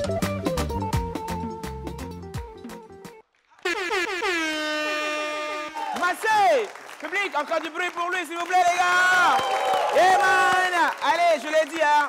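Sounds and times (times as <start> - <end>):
long air horn blast: 3.6 - 5.9
short falling horn toots: 3.6 - 6.0.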